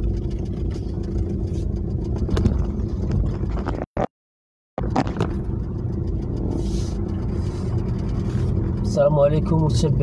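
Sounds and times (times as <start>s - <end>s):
car engine and tyre rumble: 0.0s - 4.0s, 4.8s - 10.0s.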